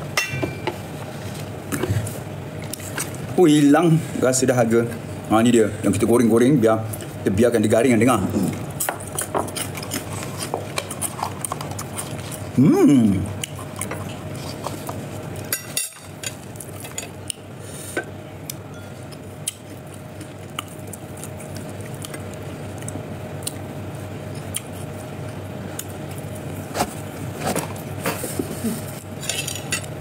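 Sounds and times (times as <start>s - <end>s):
faint hum and hiss: 0.0s - 30.0s.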